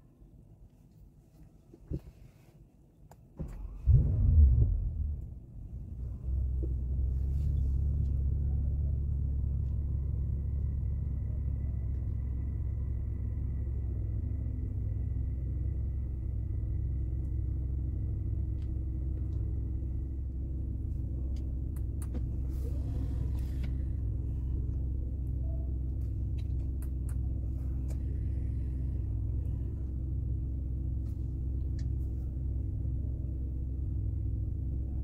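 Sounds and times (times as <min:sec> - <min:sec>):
car engine idling: 0:03.5 - 0:35.0.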